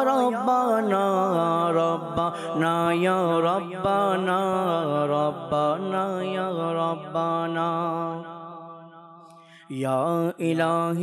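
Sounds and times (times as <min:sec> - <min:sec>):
man singing into a microphone: 0:00.0 - 0:08.5, 0:09.6 - 0:11.0.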